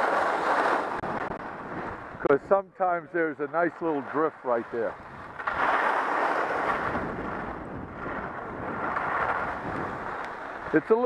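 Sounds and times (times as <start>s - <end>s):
skis sliding on snow: 0.0s - 11.0s
wind rushing over microphone: 0.0s - 11.0s.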